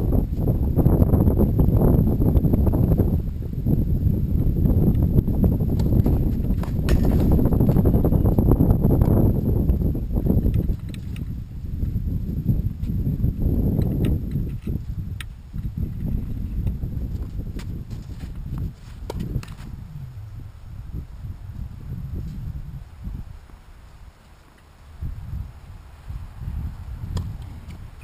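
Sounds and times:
steady low rumble: 0.0 - 24.2
wind buffeting microphone: 0.0 - 28.0.

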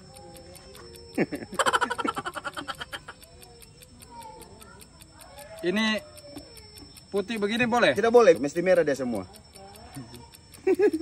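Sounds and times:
man laughing: 1.2 - 3.2, 10.6 - 11.0.

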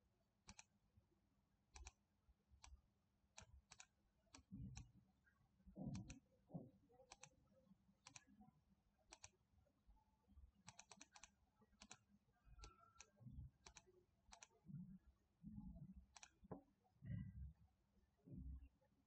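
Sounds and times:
computer mouse clicks: 0.5 - 0.7, 1.7 - 2.0, 3.4 - 4.9, 5.9 - 6.2, 7.0 - 7.4, 8.0 - 8.4, 9.1 - 9.4, 10.6 - 14.6, 16.1 - 16.6
soft low thumps: 17.0 - 17.6.

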